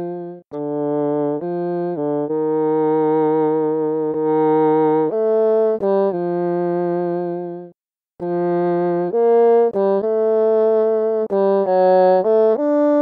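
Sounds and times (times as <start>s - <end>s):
solo bassoon melody: 0.0s - 13.0s.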